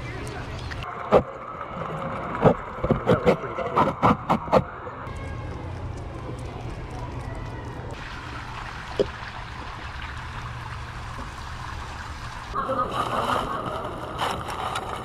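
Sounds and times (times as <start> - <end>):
low rumble and hiss: 4.6 - 15.0.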